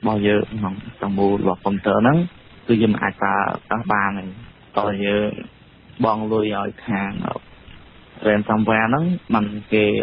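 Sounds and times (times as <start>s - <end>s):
person reading news: 0.0s - 10.0s.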